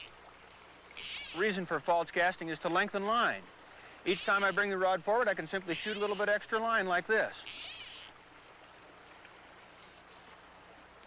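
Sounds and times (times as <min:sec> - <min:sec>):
stream water flowing: 0:00.0 - 0:11.0.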